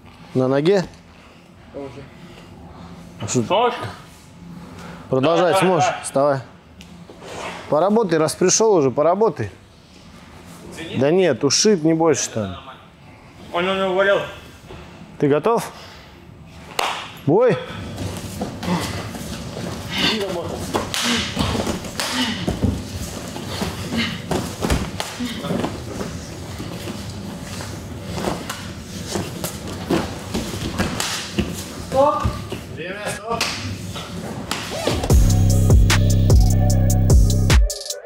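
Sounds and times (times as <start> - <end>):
music with heavy drum beat: 35.1 - 38.0.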